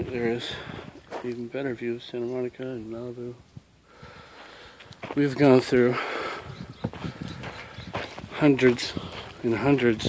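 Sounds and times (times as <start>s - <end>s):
footsteps on dirt trail: 0.0s - 1.8s, 4.2s - 10.0s.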